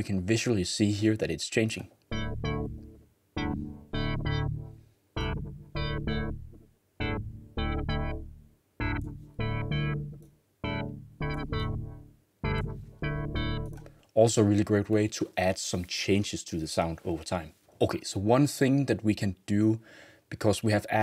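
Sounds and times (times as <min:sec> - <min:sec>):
synth chord stabs: 0:02.1 - 0:13.9.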